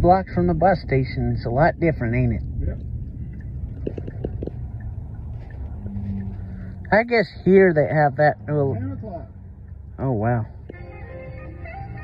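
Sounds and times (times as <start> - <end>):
car engine rumble: 0.0 - 12.0
road noise: 0.0 - 12.0
steady low hum: 0.0 - 12.0.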